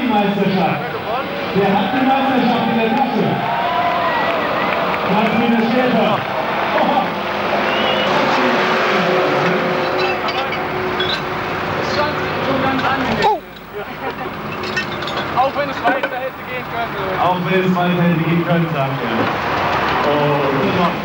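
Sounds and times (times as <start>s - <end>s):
men talking: 0.0s - 3.8s, 4.7s - 21.0s
tractor engine running loudly: 5.1s - 21.0s.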